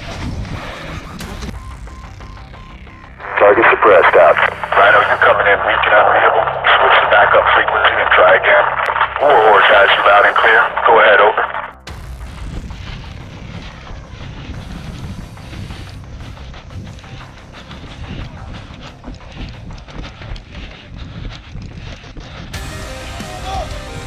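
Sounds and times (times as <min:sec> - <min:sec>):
voice over two-way radio: 0:03.2 - 0:11.7.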